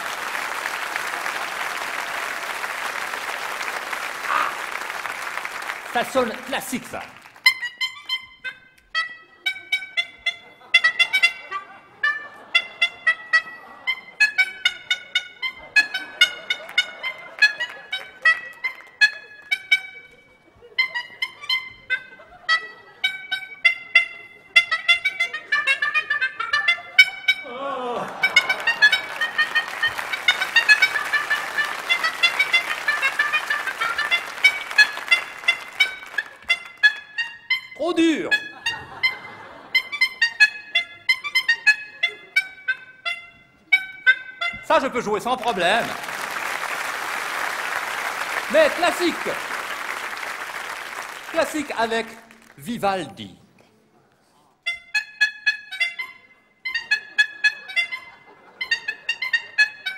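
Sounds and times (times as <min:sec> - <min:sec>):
bulb horns honking a tune: 0:01.3 - 0:52.6, 0:54.7 - 0:59.9.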